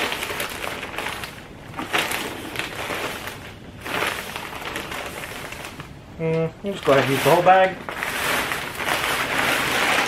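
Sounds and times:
compost and bag rustling: 0.0s - 10.0s.

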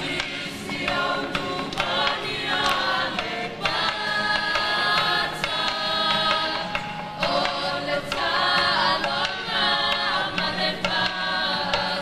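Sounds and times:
group singing in harmony: 0.0s - 12.0s
sharp percussive strikes: 0.0s - 12.0s.

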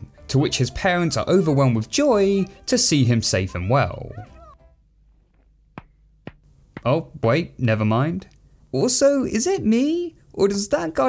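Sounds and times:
cartoon penguin chick squeaky cry: 4.1s - 4.6s.

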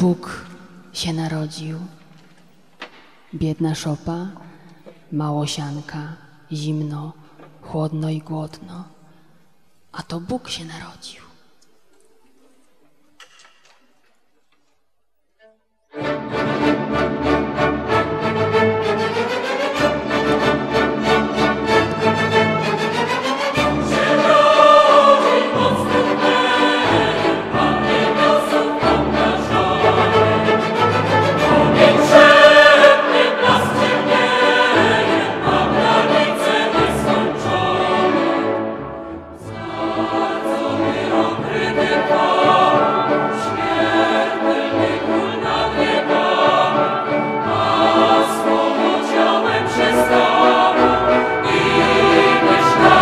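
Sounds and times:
orchestra and choir performing carol: 15.4s - 53.0s.

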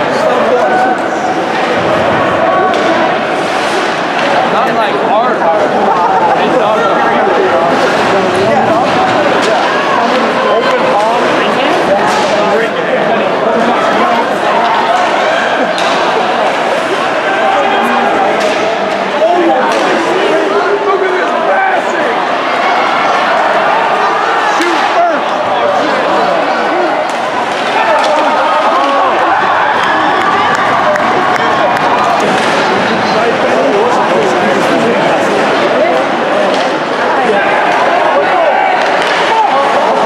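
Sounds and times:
spectators chattering: 0.0s - 40.0s
puck and sticks hitting boards: 27.1s - 28.8s, 30.5s - 33.0s, 38.8s - 39.4s.

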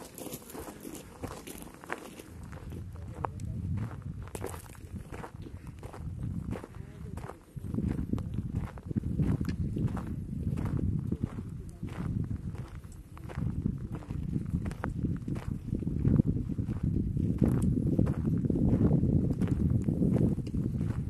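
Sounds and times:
footsteps on gravel: 0.0s - 21.0s
wind rumble on microphone: 0.6s - 21.0s.

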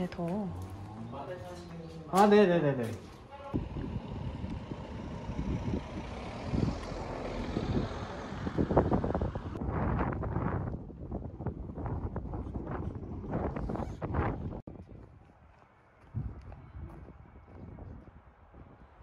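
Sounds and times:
wind buffeting microphone: 3.4s - 19.0s.

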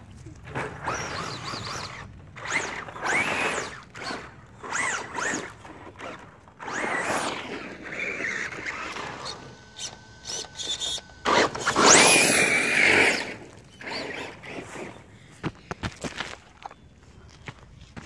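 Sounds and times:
tyres on gravel: 0.0s - 18.0s
electric motor whining: 0.8s - 15.1s.

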